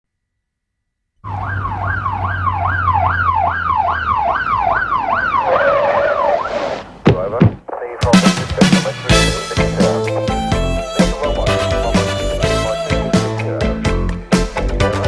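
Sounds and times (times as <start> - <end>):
police siren wailing: 1.2 - 6.7.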